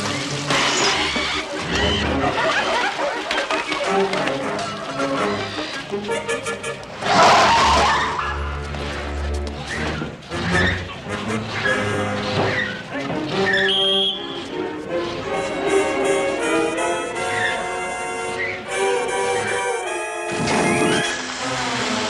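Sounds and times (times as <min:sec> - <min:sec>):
brass-led orchestral music: 0:01.6 - 0:22.0.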